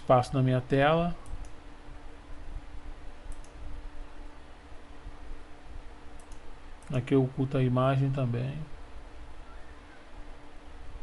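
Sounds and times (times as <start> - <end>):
low steady hum: 0.0 - 11.0
computer mouse clicking: 3.3 - 3.6, 6.2 - 7.0.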